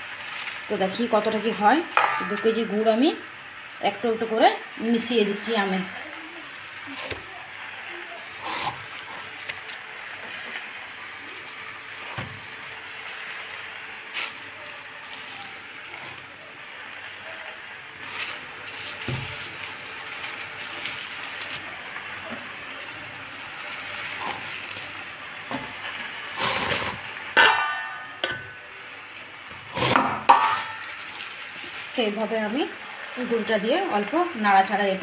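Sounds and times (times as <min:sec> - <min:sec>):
clinks against a steel pan: 0:02.0 - 0:02.7, 0:27.4 - 0:28.6, 0:30.2 - 0:31.0.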